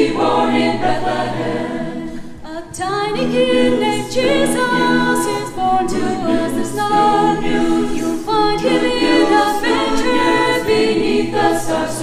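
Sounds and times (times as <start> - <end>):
mixed choir singing in harmony: 0.0 - 12.0.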